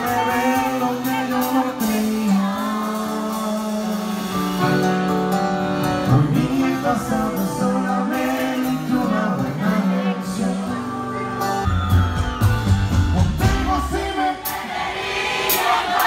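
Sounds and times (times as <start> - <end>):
person singing: 0.0 - 4.9, 5.9 - 11.7
band playing: 0.0 - 16.0
button accordion playing: 4.2 - 6.4.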